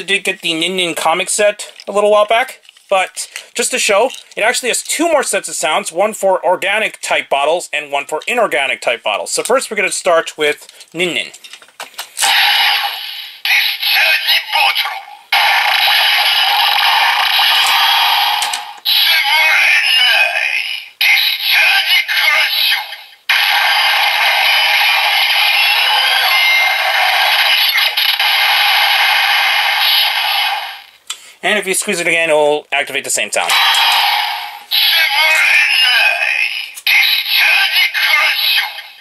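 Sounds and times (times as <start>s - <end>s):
toy belt recorded voice call: 13.4s - 16.6s, 18.4s - 23.1s, 25.5s - 28.0s, 34.7s - 39.0s.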